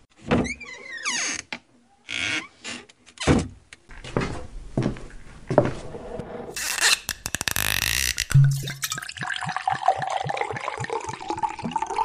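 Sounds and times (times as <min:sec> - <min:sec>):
liquid glugging from a bottle: 0:08.0 - 0:12.0.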